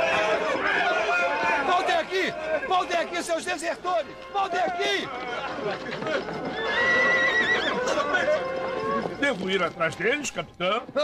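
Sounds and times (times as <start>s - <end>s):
horse whinnying: 6.2s - 9.2s.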